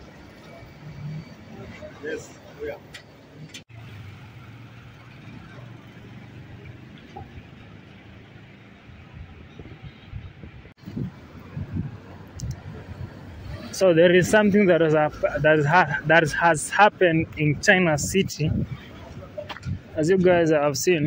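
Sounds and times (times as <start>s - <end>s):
road traffic hum: 0.0s - 21.0s.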